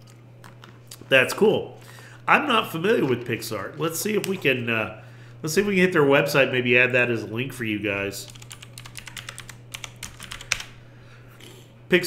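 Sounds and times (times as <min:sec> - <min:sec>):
computer keyboard typing: 0:08.3 - 0:10.7.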